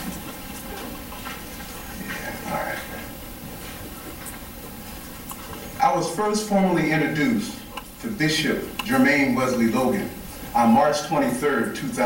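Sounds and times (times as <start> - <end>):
steady room noise hiss: 0.0 - 12.0.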